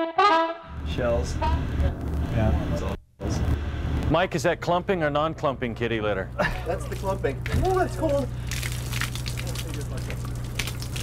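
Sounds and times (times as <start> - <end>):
steady low hum: 0.6 - 11.0.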